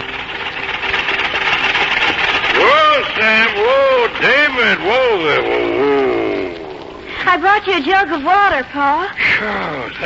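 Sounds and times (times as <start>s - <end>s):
mowing machine whirring: 0.0s - 7.7s
man calling: 2.5s - 7.1s.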